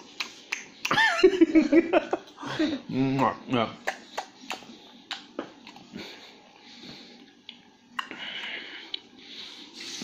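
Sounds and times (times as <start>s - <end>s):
wet mouth clicks: 0.1s - 1.0s, 3.8s - 5.8s, 7.4s - 9.1s
child chewing: 3.9s - 10.0s.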